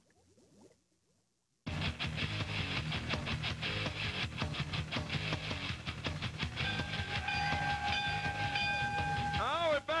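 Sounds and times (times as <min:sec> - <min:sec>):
theme music beat: 0:01.7 - 0:09.5
high held horn-like note: 0:06.8 - 0:09.4
man's voice: 0:09.4 - 0:10.0.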